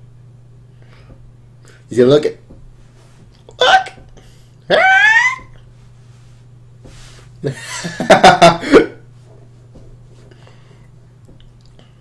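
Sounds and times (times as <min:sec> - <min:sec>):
high-pitched voice outbursts: 0:03.5 - 0:04.0, 0:04.7 - 0:05.5.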